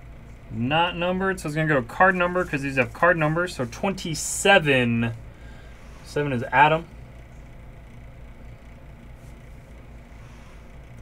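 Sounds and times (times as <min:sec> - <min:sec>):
room noise hum: 0:00.0 - 0:11.0.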